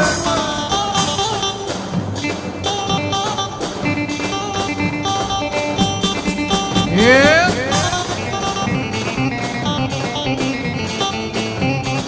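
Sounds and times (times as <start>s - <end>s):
live band dance music: 0.0s - 12.0s.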